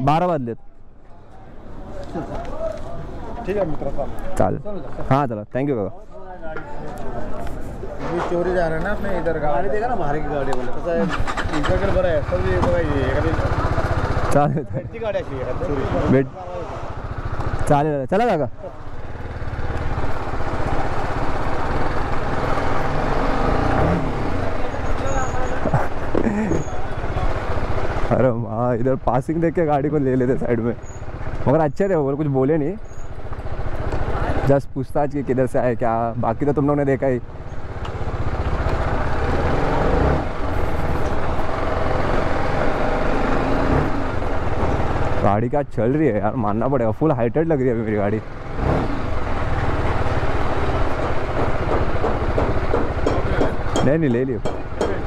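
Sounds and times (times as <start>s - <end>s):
motorcycle engine: 7.9s - 28.6s, 29.2s - 45.3s, 47.4s - 55.0s
motorcycle engine running: 11.1s - 14.4s, 15.3s - 17.8s.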